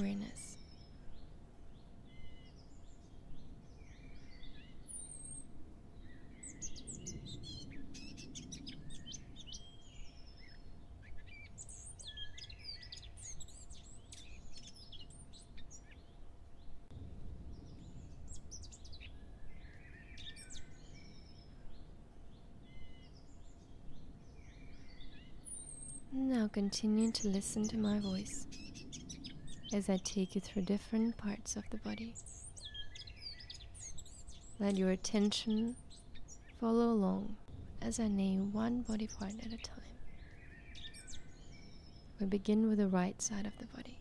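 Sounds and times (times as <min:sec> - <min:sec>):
small birds chirping: 0:00.0 - 0:44.0.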